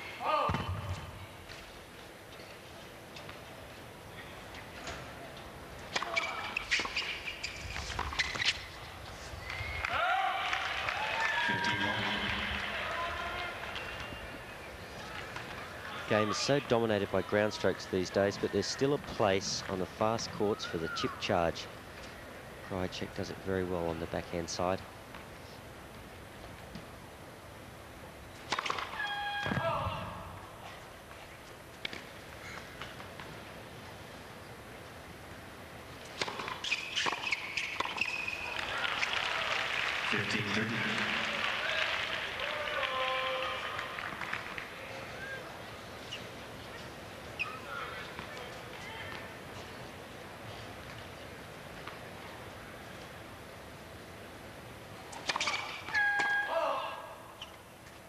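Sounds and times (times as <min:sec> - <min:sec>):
stadium background hiss: 0:00.0 - 0:58.0
crowd applauding and cheering: 0:09.4 - 0:14.3, 0:38.4 - 0:45.4
tennis racquets hitting ball: 0:28.4 - 0:29.7, 0:36.0 - 0:38.2, 0:55.1 - 0:56.4
spectator shouting: 0:55.9 - 0:57.2.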